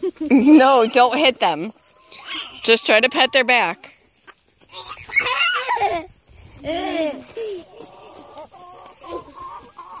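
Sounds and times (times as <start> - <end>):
hens clucking: 0.0 - 10.0.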